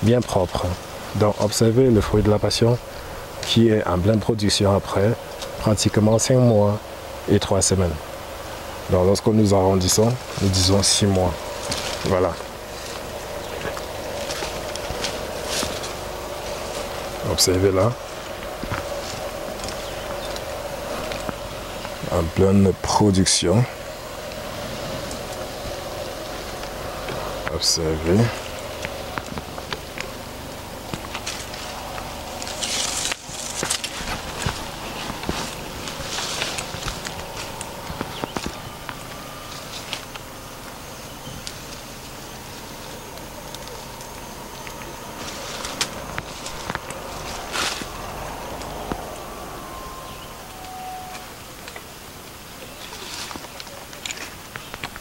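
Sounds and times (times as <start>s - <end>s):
dry vegetation rustling and snapping: 0.0s - 55.0s
faint hum: 0.0s - 55.0s
outdoor background hiss: 0.0s - 55.0s.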